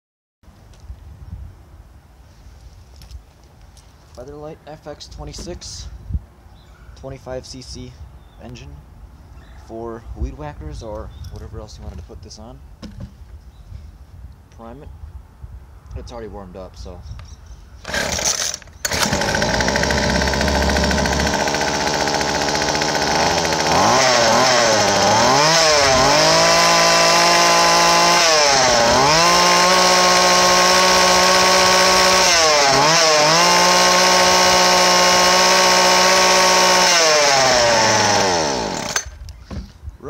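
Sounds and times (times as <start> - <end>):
trimmer engine revving: 17.9 - 39.2.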